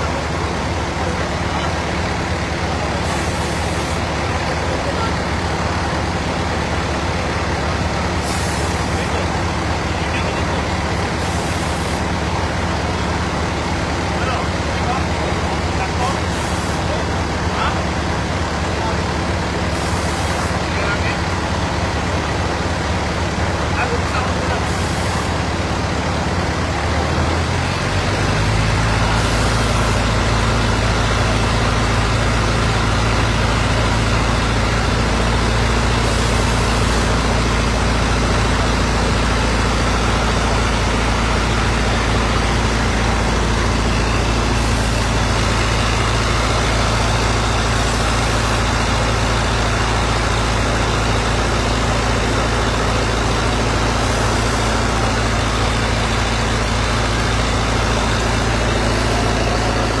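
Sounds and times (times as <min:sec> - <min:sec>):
fire truck engine humming: 0:00.0 - 1:00.0.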